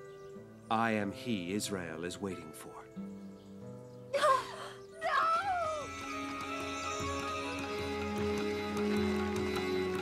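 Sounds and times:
background music: 0.0s - 10.0s
woman's wavering cry: 4.1s - 7.8s.

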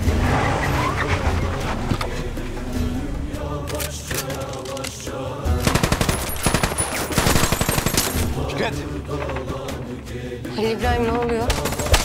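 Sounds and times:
tense background music: 0.0s - 12.0s
rapid automatic gunfire: 5.6s - 8.2s.

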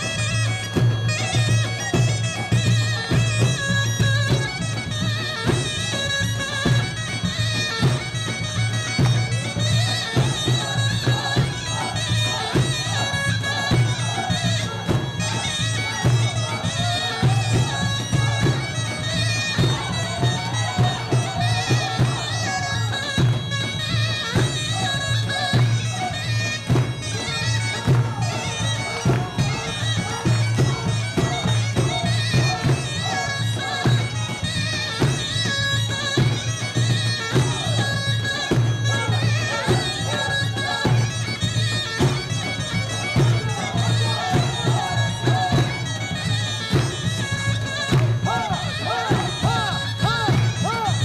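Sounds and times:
drum beating: 0.0s - 51.0s
wind instrument wavering melody: 0.0s - 51.0s.

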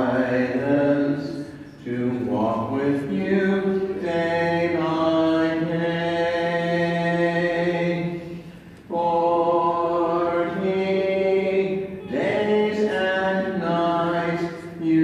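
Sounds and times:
voices singing a hymn: 0.0s - 15.0s.

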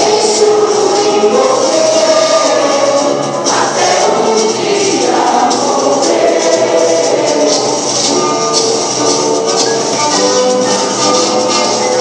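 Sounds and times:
choir singing long notes: 0.0s - 8.0s
light percussion beat: 0.0s - 12.0s.

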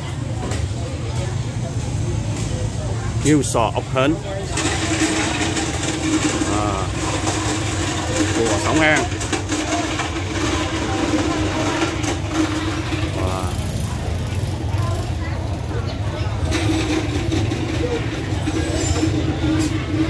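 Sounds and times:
market voices: 0.0s - 20.0s
motorbike engine running: 1.4s - 20.0s.

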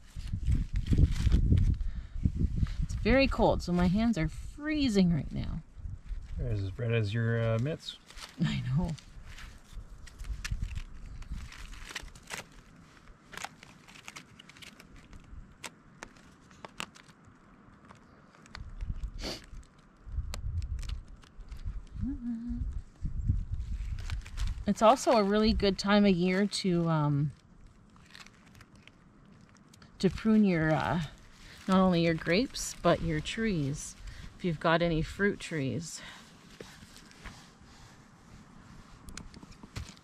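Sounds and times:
twine clicks and rustles: 8.1s - 21.9s
low rumble: 18.6s - 26.1s.

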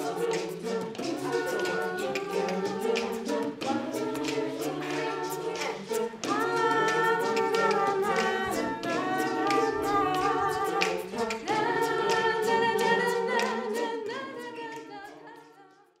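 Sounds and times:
choir singing a cappella: 0.0s - 16.0s.

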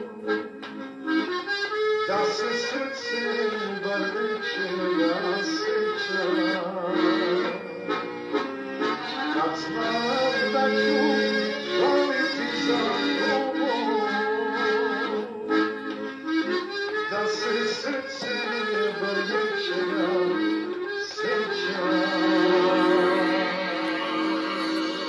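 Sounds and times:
accordion melody: 0.0s - 25.0s
live folk song: 0.0s - 25.0s.

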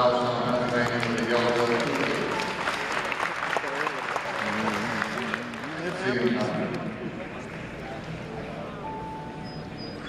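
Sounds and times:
audience applauding: 0.6s - 6.8s.

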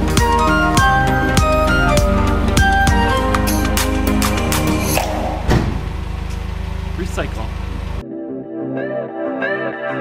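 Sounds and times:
background music: 0.0s - 5.5s, 8.0s - 10.0s.

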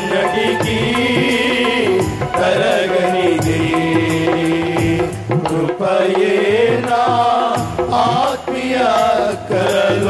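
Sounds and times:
steady drumbeat: 0.0s - 10.0s.

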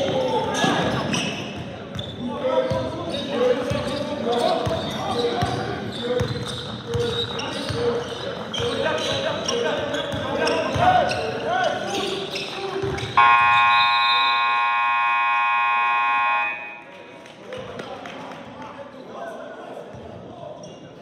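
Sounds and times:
players' voices: 0.0s - 20.8s
sneakers squeaking on hardwood: 1.0s - 2.2s, 3.8s - 13.6s
scoreboard buzzer blaring: 13.2s - 16.8s.

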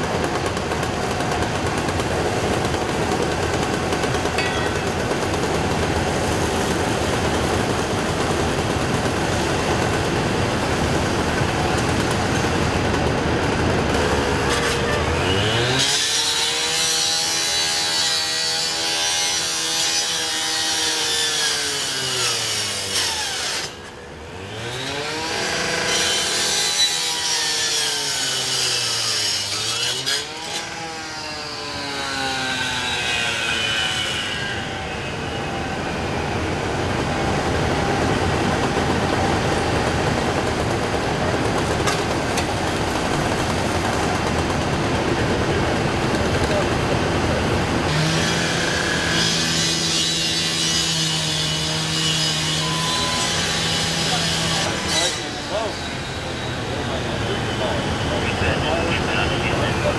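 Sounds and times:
power saw cutting metal: 0.0s - 44.8s, 47.5s - 59.4s.

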